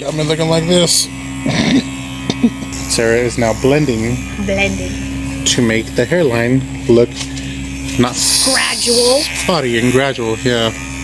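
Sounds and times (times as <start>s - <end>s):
electric hair clippers buzzing: 0.0s - 11.0s
short laugh: 1.4s - 2.8s.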